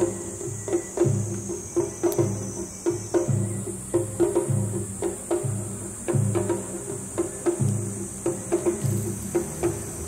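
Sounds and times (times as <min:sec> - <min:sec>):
drums playing: 0:00.0 - 0:10.0
insects chirring: 0:00.0 - 0:10.0.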